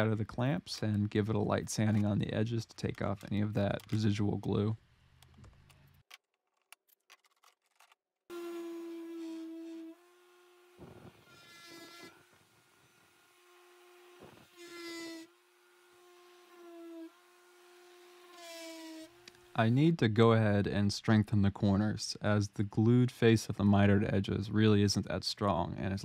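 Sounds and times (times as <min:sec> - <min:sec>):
orbital sander humming: 0:08.3 - 0:19.6.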